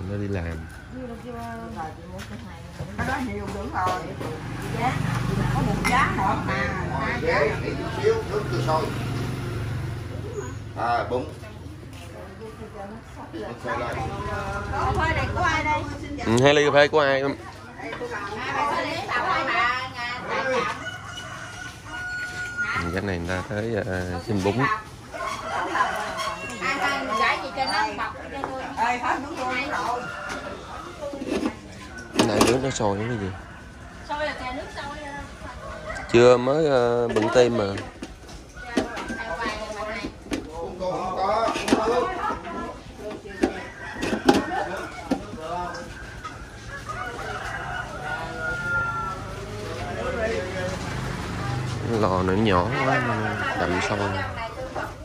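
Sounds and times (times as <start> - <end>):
people's voices: 0.0 - 55.0
rooster crowing: 18.6 - 23.5, 24.6 - 36.7, 42.0 - 51.8, 52.4 - 55.0.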